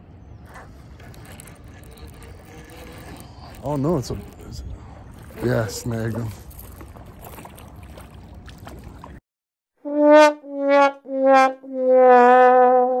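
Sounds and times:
sad trombone sound effect: 9.8s - 13.0s.

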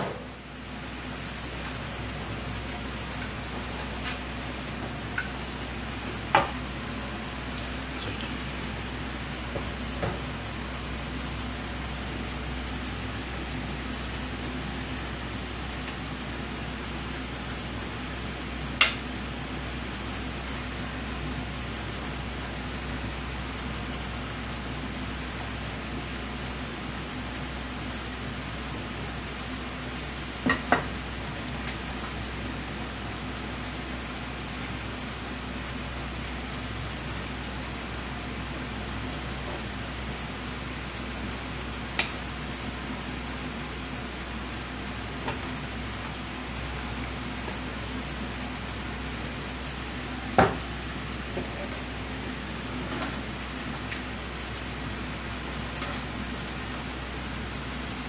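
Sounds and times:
kitchen ventilation drone: 0.0s - 58.0s.

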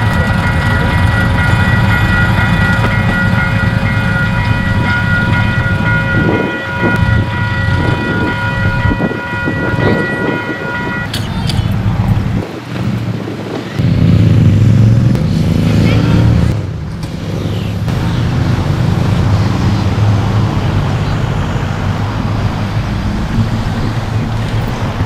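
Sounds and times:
railcar engine running: 0.0s - 25.0s.

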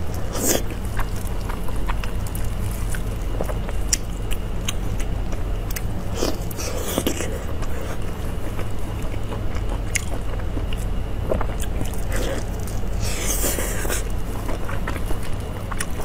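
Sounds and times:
steady low hum: 0.0s - 16.0s
wet chewing and biting: 0.0s - 16.0s.

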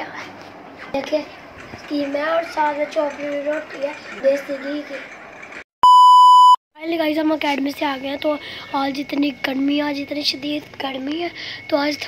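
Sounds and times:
electronic beep: 5.8s - 6.6s.

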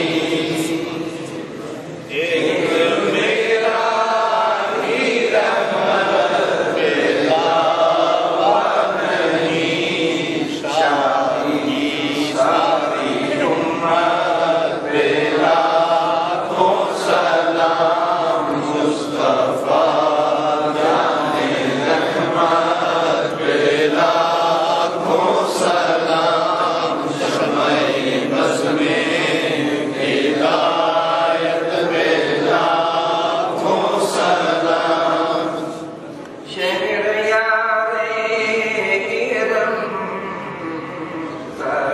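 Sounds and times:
man chanting devotional verse: 0.0s - 41.9s.

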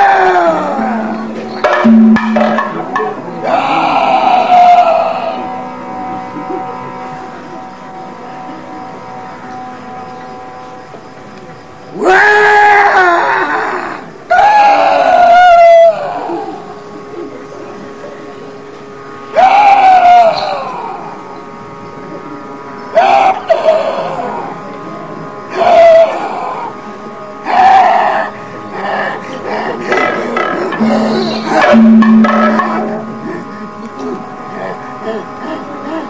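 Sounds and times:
drone tone: 0.0s - 36.0s.

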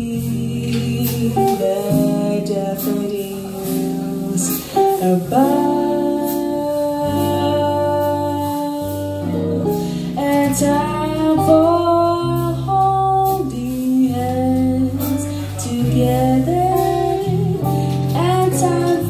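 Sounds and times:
electric bass: 0.0s - 19.0s
electric guitar: 0.0s - 19.0s
woman singing jazz ballad: 0.0s - 19.0s.

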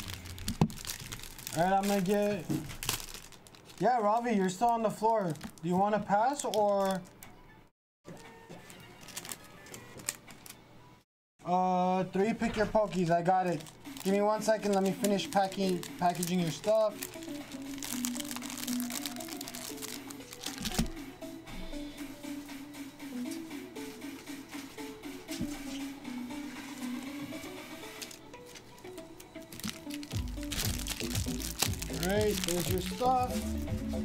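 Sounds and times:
card packaging crinkling: 0.0s - 7.1s, 8.1s - 10.6s, 12.9s - 21.0s, 27.9s - 33.9s
background music: 0.0s - 34.0s.

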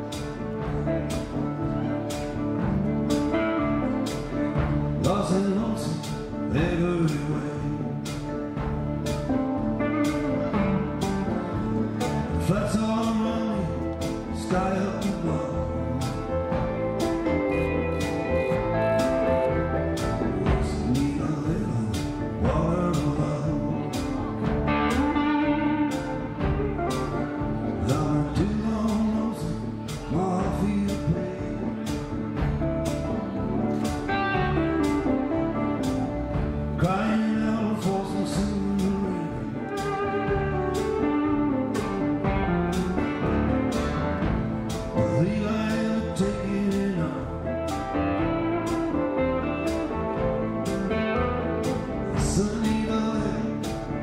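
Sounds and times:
bass: 0.0s - 54.0s
electric lead guitar: 0.0s - 54.0s
live country-blues band: 0.0s - 54.0s
drum hits: 24.0s - 28.6s, 39.8s - 45.6s.

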